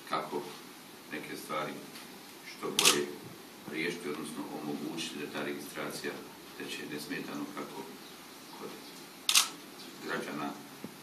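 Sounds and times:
camera shutter click: 2.8s - 3.1s, 9.3s - 9.6s.

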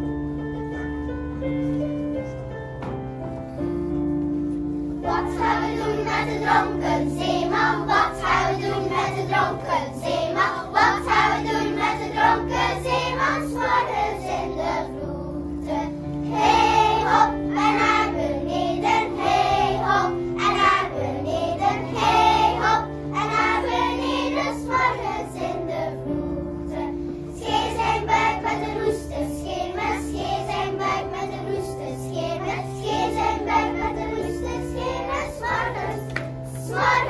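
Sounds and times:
keyboard sustained chords: 0.0s - 37.0s
children's choir singing: 5.0s - 37.0s.

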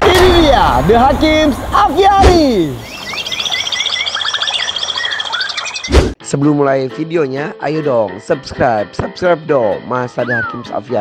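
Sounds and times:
sudden loud hit: 0.0s - 2.6s
bird chirps and whistles: 2.8s - 6.0s.

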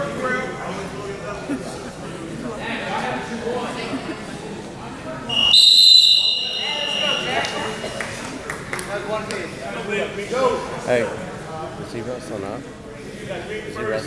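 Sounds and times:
spectators' voices: 0.0s - 14.0s
referee's whistle blast: 5.3s - 7.8s.

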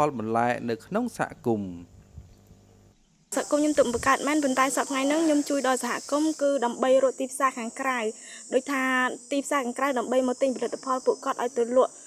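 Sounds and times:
high-pitched insect drone: 3.3s - 12.0s
woman talking: 3.3s - 12.0s.

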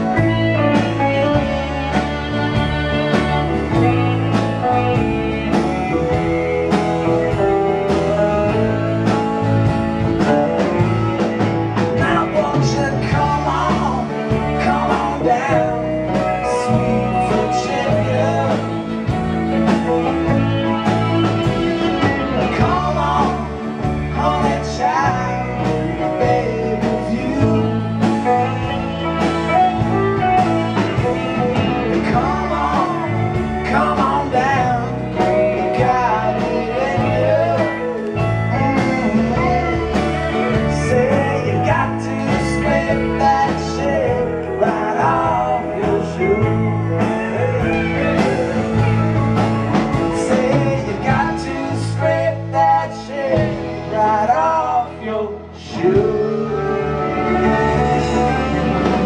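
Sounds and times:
acoustic guitar: 0.0s - 59.0s
bass guitar: 0.0s - 59.0s
drums: 0.0s - 59.0s
electric guitar bending lead notes: 0.0s - 59.0s.

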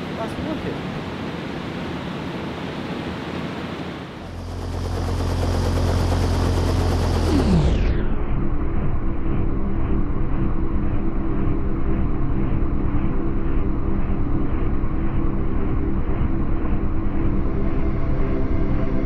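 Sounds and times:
rush of air from fans: 0.0s - 7.5s
steady hum: 0.0s - 19.0s
deep rumbling drone: 4.2s - 19.0s.

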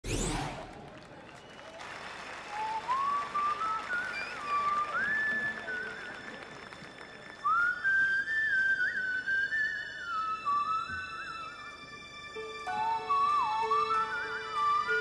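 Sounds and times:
person whistling a melody: 2.5s - 6.4s, 7.4s - 11.6s, 12.7s - 15.0s.

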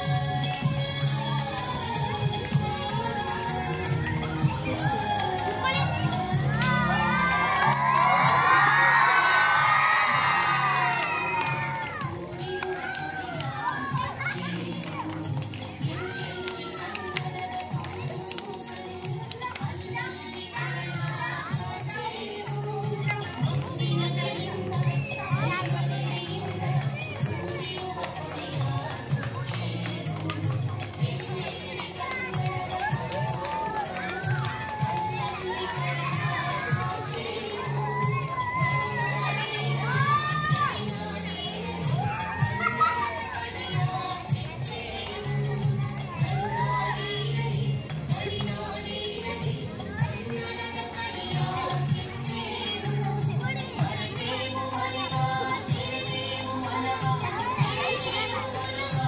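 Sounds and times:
song playing: 0.0s - 59.0s
children calling out and cheering: 1.0s - 59.0s.

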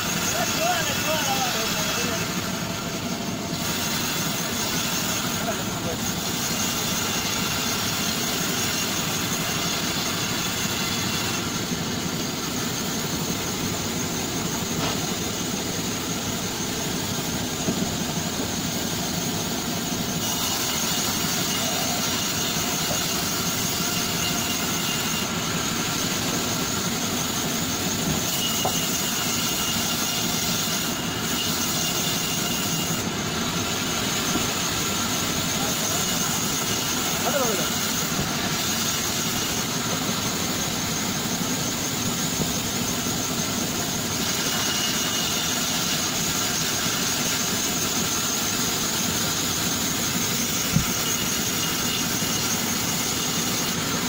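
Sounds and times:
band saw cutting wood: 0.0s - 54.0s.

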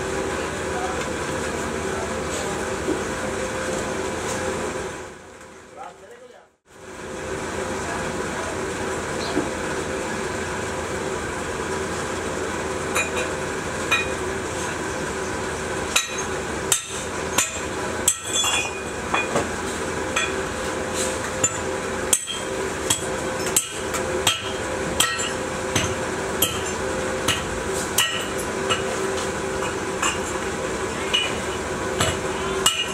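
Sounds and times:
steady mechanical drone: 0.0s - 32.9s.

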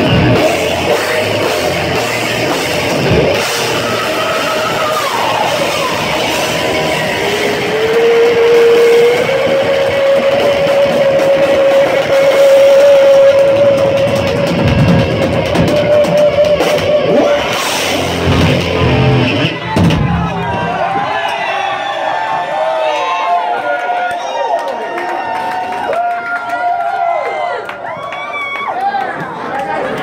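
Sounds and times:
live metal band playing: 0.0s - 21.1s
heavy drum hits: 0.0s - 21.2s.

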